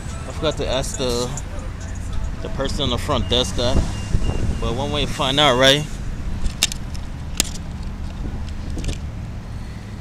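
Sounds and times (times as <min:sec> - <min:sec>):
rumble of passing cars: 0:00.0 - 0:10.0.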